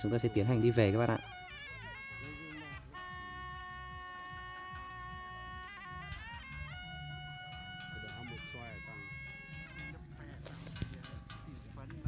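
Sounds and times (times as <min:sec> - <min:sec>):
wind instrument long note: 0:00.0 - 0:09.9.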